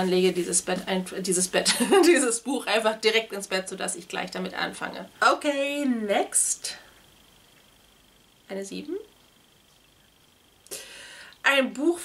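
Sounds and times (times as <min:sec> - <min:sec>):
woman breathing: 0:10.7 - 0:11.4.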